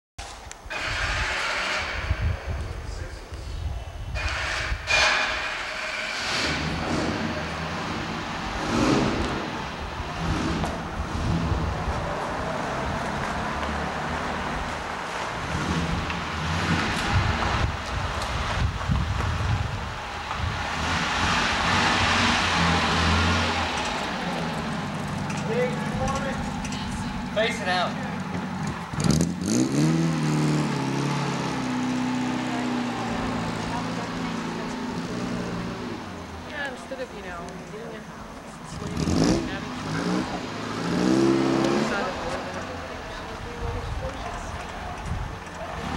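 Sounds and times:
car engine running: 5.7s - 45.9s
tyres rolling on gravel: 20.8s - 45.9s.

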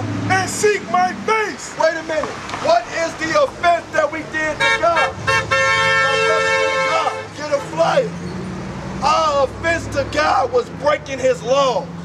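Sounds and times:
car horn blast: 4.6s - 7.9s.

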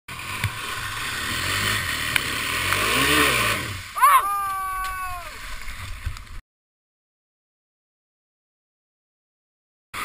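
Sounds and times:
quad engine revving: 0.1s - 4.0s.

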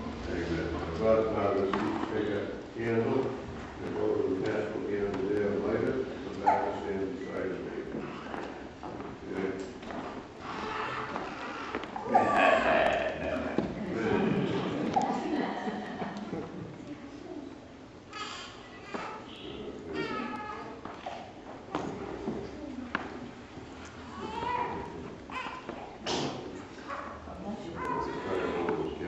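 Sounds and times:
people shuffling: 0.0s - 17.4s, 18.4s - 29.0s
faint indistinct voices: 0.0s - 29.0s.

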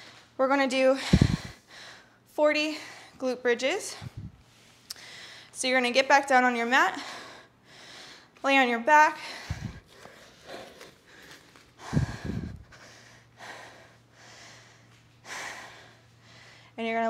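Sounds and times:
woman breathing hard: 0.9s - 3.2s, 3.9s - 5.6s, 6.9s - 8.4s, 9.2s - 16.8s.

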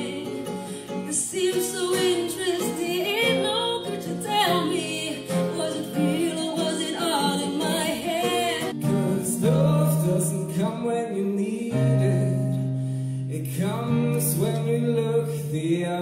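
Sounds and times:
woman singing into microphone: 0.0s - 8.9s.

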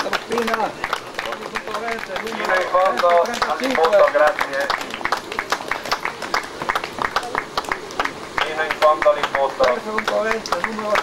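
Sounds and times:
spectators clapping: 0.0s - 11.0s.

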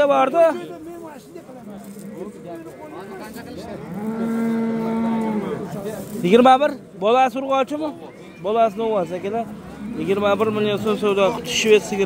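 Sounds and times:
cow mooing: 3.8s - 5.6s.

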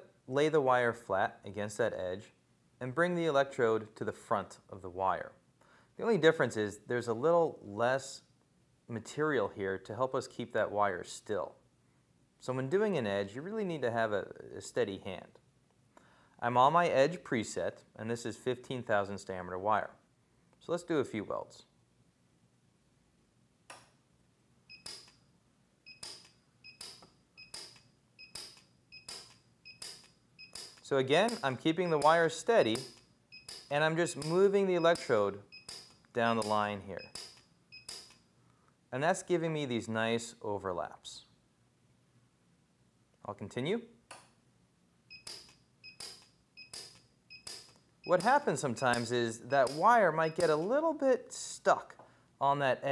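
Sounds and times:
welder cracks: 26.0s - 38.2s, 45.3s - 50.7s
welder high beep: 31.8s - 32.2s, 33.3s - 33.7s, 50.2s - 50.6s.

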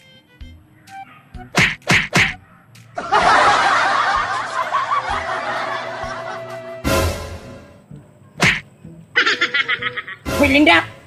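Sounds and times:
comedy sound effect hits: 1.5s - 2.4s, 8.4s - 8.6s
canned laughter: 3.0s - 6.7s, 9.2s - 10.3s.

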